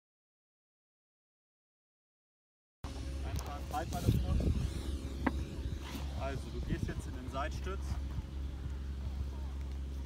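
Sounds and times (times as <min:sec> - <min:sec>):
wind rumble on microphone: 0:02.9 - 0:10.0.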